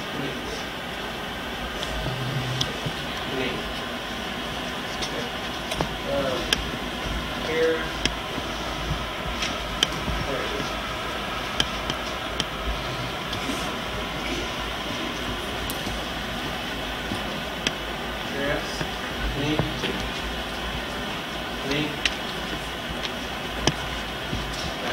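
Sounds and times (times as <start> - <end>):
camcorder hiss and hum: 0.0 - 24.9
faint voices: 1.7 - 6.6, 12.6 - 17.6.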